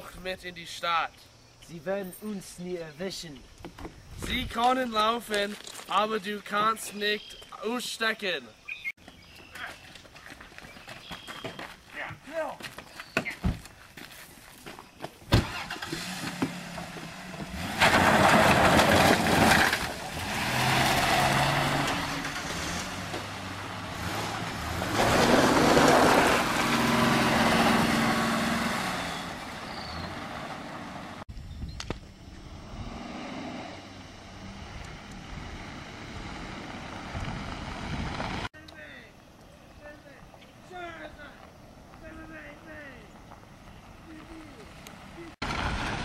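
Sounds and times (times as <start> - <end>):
tyres on gravel: 3.1 - 31.2, 33.9 - 46.0
car engine revving: 15.4 - 31.2, 32.4 - 38.5
car running steadily: 15.4 - 31.2, 32.2 - 38.5.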